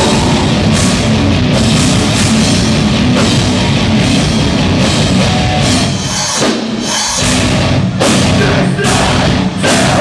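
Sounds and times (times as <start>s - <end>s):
metalcore band playing live: 0.0s - 10.0s.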